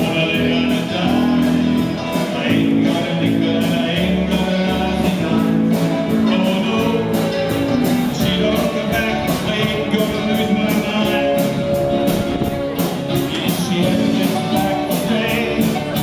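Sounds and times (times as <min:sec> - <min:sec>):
live rock band playing: 0:00.0 - 0:16.0
person singing: 0:00.0 - 0:16.0.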